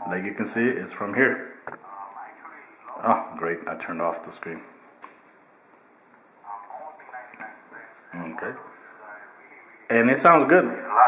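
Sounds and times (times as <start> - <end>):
voice through small tablet speaker: 6.4 - 10.0, 10.6 - 11.0.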